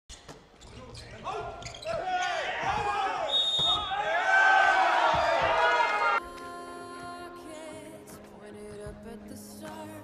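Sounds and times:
crowd shouting and cheering: 0:01.9 - 0:06.2
referee's whistle: 0:03.2 - 0:04.0.

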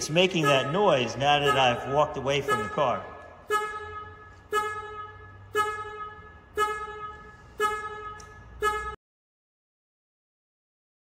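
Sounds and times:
car warning chime: 0:00.2 - 0:09.0.

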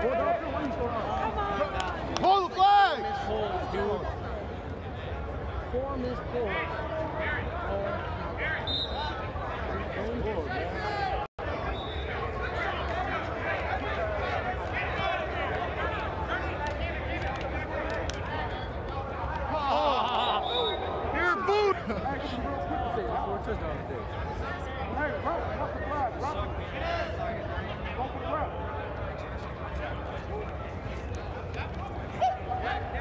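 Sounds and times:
people calling and shouting: 0:00.0 - 0:33.0.

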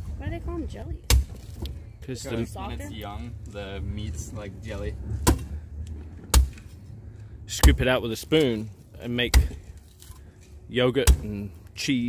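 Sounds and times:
machete chopping coconut: 0:01.0 - 0:01.6, 0:05.2 - 0:05.5, 0:06.2 - 0:06.7, 0:07.5 - 0:08.0, 0:09.2 - 0:09.6, 0:11.0 - 0:11.4.

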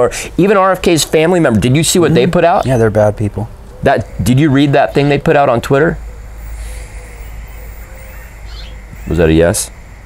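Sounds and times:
bird cooing faintly: 0:03.6 - 0:10.0.

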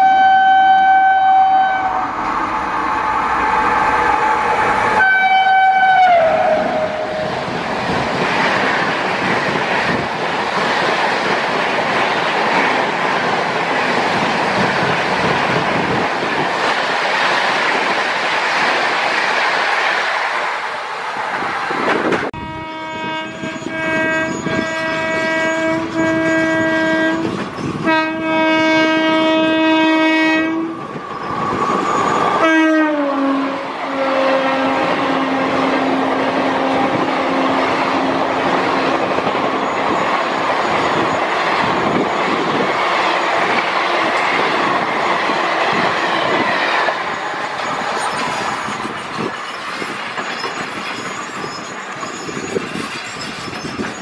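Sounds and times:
locomotive horn blasts: 0:00.0 - 0:07.3, 0:22.4 - 0:30.8, 0:32.4 - 0:37.6
trains rushing past: 0:00.0 - 0:54.0
train wheel clatter: 0:06.7 - 0:20.6, 0:34.8 - 0:54.0.

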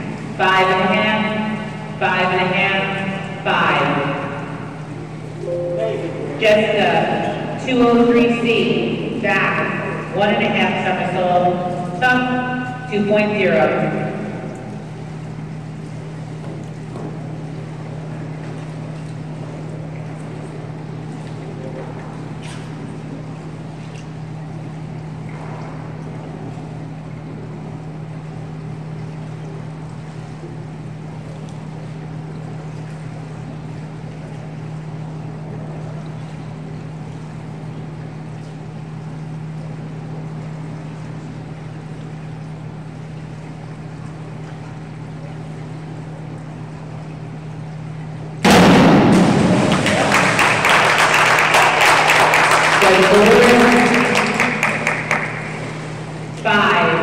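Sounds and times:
low hall hum: 0:00.0 - 0:57.0
diver splashing into water: 0:48.4 - 0:52.4
applause and cheering: 0:49.5 - 0:55.8.

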